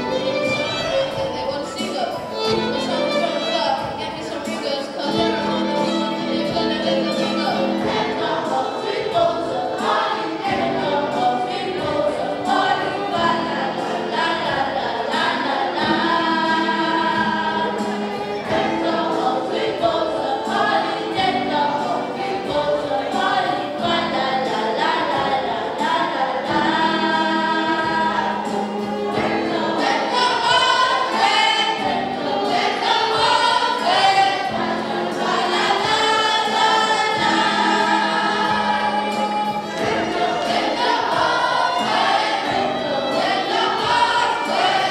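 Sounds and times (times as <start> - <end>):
solo violin playing: 0.0 - 4.2, 5.1 - 8.1
choir singing: 0.0 - 44.9.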